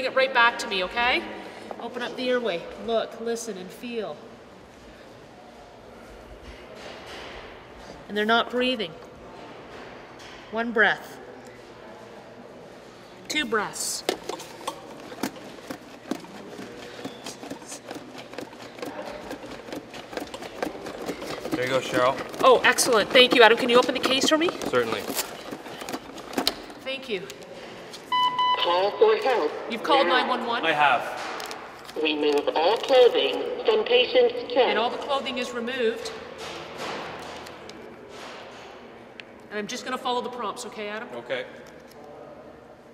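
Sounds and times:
manikin chest clicking and knocking: 0:14.1 - 0:26.8.

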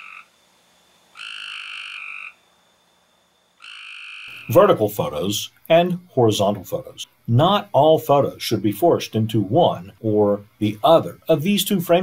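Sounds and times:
frog croaking: 0:00.0 - 0:00.4, 0:01.1 - 0:02.4, 0:03.6 - 0:08.4.

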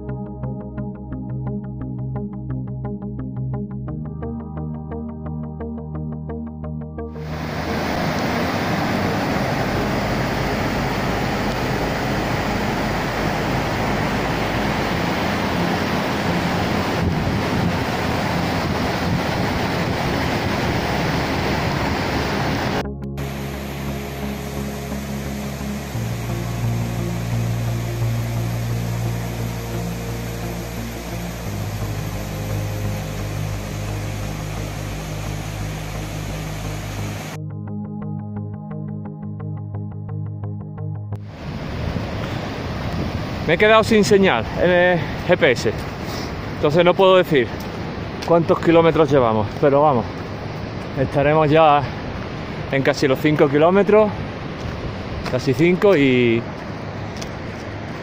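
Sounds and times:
sustained synthesizer chords: 0:00.0 - 0:43.0
mountain stream rushing: 0:07.2 - 0:37.4, 0:41.2 - 0:58.0
rushing of falling water: 0:07.2 - 0:37.4, 0:41.2 - 0:58.0.

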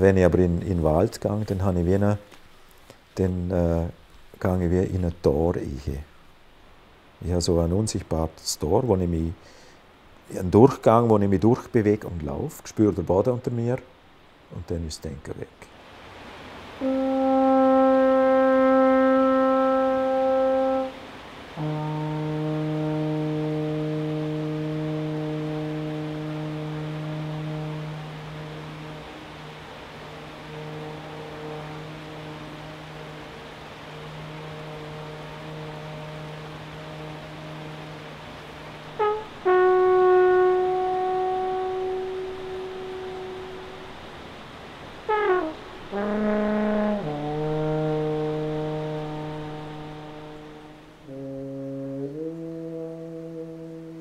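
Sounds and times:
alphorn playing long notes: 0:16.6 - 0:54.0.

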